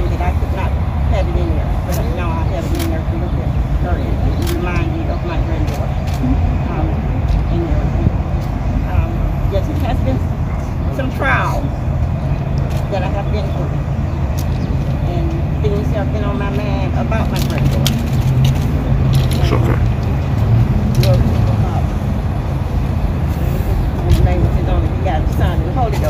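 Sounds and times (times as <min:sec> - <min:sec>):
low outdoor rumble: 0:00.0 - 0:26.0
faint indistinct voices: 0:19.2 - 0:19.9
rising voice: 0:19.4 - 0:19.9.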